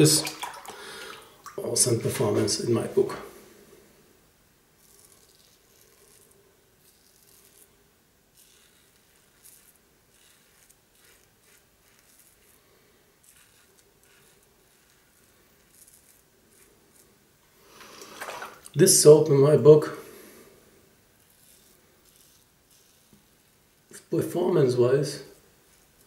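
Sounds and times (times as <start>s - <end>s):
razor scraping stubble: 4.8s - 18.8s, 21.1s - 24.8s, 25.4s - 26.0s.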